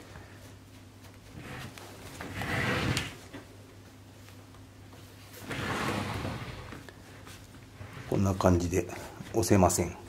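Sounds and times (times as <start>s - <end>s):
table frame scraping and rustling: 1.3s - 3.2s, 5.3s - 6.9s, 7.8s - 8.6s.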